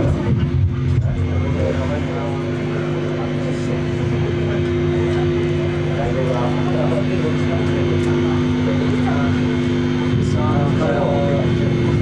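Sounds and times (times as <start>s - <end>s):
electric guitars droning chord: 0.0s - 12.0s.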